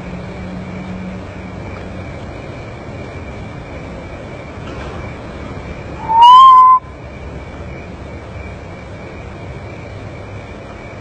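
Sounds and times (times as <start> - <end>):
faint high tone and hiss: 0.0 - 11.0
bird whistled note: 6.0 - 6.9.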